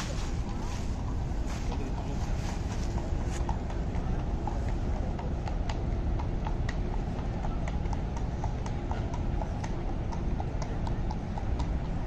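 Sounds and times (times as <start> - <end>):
horse hooves clip-clopping on pavement: 0.0 - 12.0
low background rumble: 0.0 - 12.0.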